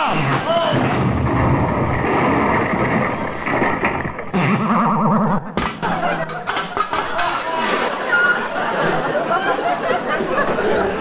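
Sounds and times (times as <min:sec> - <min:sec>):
studio audience laughing: 0:05.8 - 0:11.0.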